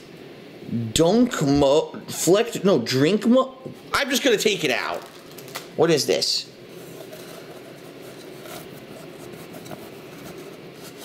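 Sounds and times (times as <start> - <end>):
packing sleeve rustling and scraping: 6.7 - 11.0.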